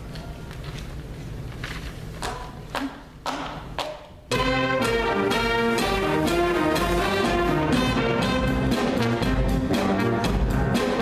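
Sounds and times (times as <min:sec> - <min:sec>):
jazz band playing funk-rock: 0:04.3 - 0:11.0.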